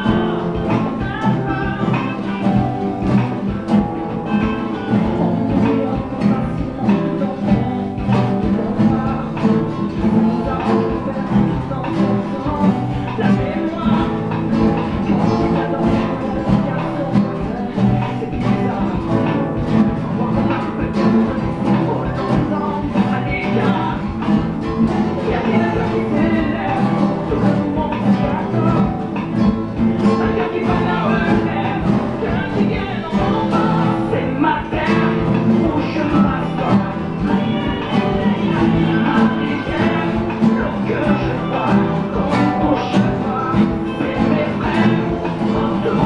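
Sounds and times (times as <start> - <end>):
classical guitars playing: 0.0 - 46.0.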